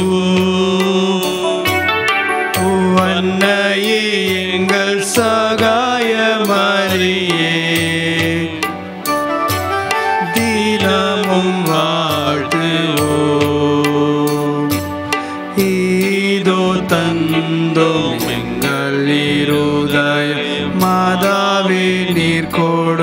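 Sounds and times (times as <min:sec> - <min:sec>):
hymn sung over accompaniment: 0:02.4 - 0:08.9, 0:09.8 - 0:23.0.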